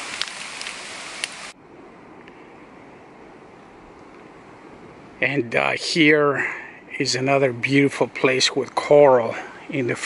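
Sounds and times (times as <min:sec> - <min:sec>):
dull background noise: 0:00.0 - 0:10.0
forest ambience hiss: 0:00.0 - 0:10.0.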